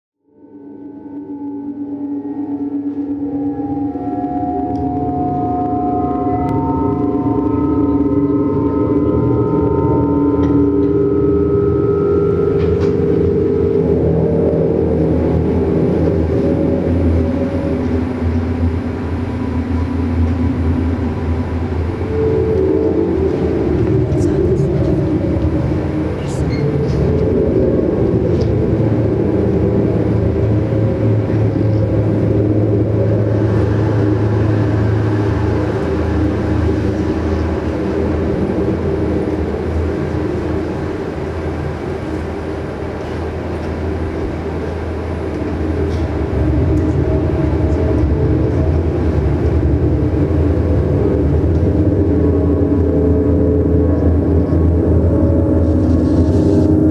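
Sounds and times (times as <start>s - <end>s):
higher held tones: 0.2s - 56.9s
low electronic drones: 0.2s - 56.9s.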